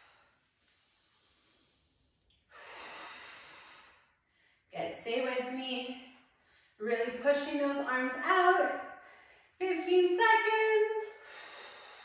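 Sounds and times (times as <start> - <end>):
woman breathing hard: 0.0 - 4.7, 11.2 - 12.0.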